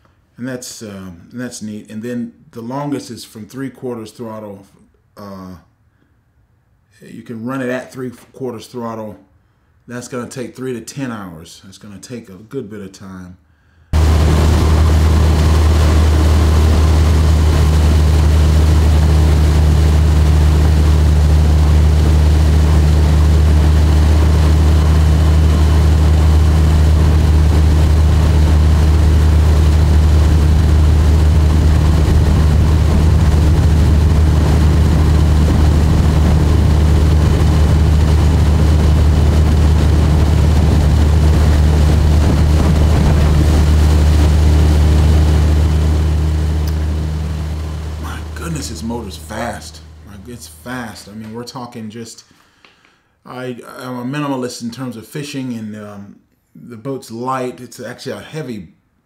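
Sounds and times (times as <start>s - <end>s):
water rushing from wake: 14.0s - 45.5s
outboard motor droning: 14.0s - 50.0s.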